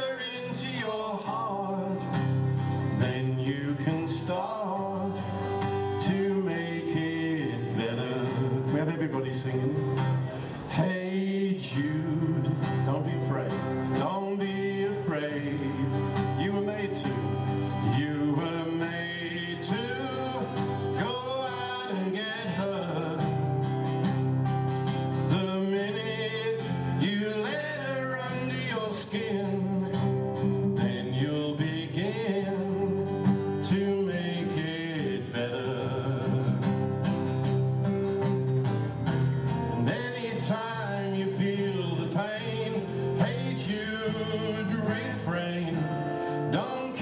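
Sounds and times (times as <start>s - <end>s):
acoustic guitars strummed: 0.0s - 47.0s
several people singing: 10.7s - 23.4s, 39.8s - 47.0s.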